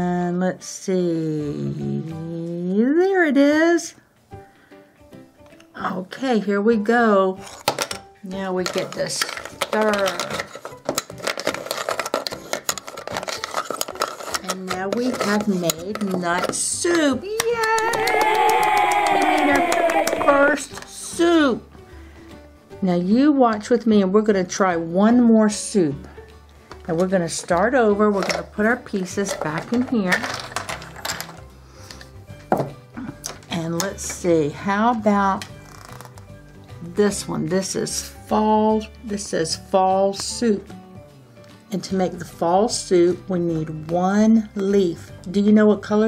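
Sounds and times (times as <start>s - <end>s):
wooden pieces clattering in pot: 7.4s - 17.1s, 28.2s - 31.5s.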